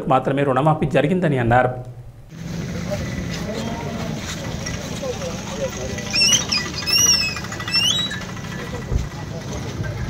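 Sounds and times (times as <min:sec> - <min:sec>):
bird whistling chirps: 0:06.1 - 0:08.3.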